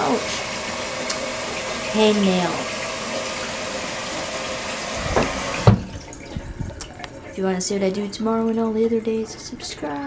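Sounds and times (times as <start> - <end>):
faucet turning off clunk: 0.0 - 7.1
faucet water running: 0.0 - 10.0.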